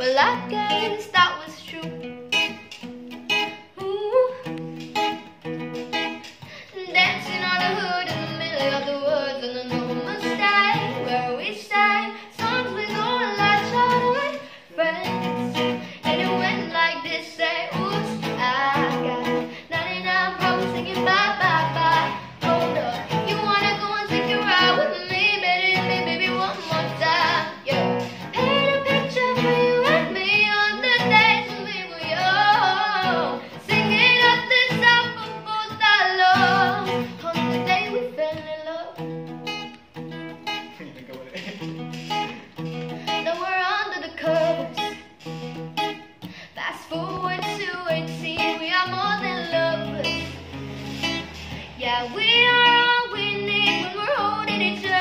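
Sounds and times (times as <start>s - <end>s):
young woman singing: 0.0s - 39.7s, 42.6s - 55.0s
acoustic guitar: 0.0s - 55.0s.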